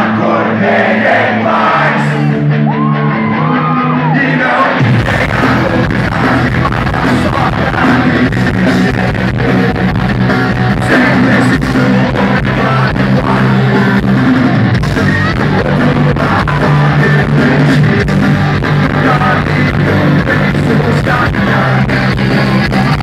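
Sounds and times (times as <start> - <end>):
punk rock band playing live: 0.0 - 23.0
person singing: 3.2 - 23.0.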